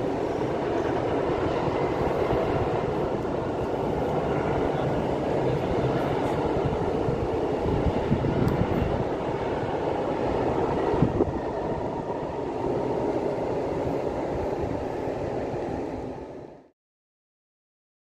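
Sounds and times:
train wheels rumbling on rail: 0:00.0 - 0:16.6.

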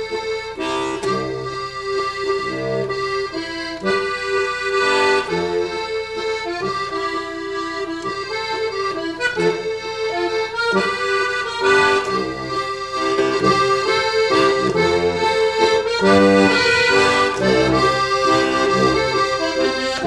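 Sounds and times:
button accordion waltz: 0:00.0 - 0:20.0.

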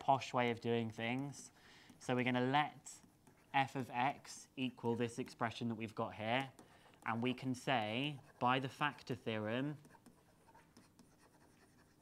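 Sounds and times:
stylus scratching on screen: 0:00.2 - 0:12.0.

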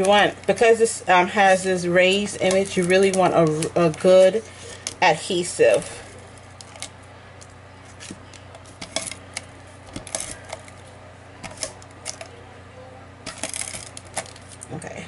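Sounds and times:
faint steady hum: 0:00.0 - 0:15.0
cardstock clicks and rustles: 0:06.6 - 0:12.3, 0:13.3 - 0:14.7.

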